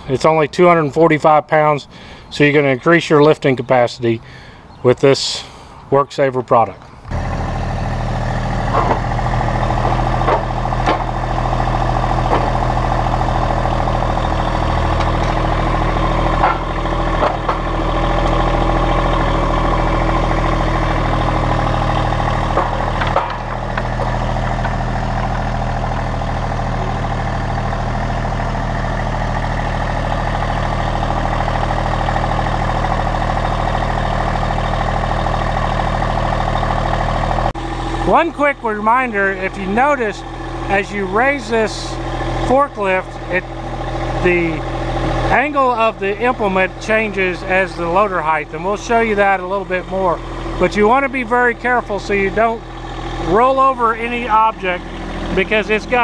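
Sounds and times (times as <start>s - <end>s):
diesel tractor engine running: 0.0s - 56.0s
short clunks: 8.6s - 13.0s, 14.1s - 27.4s.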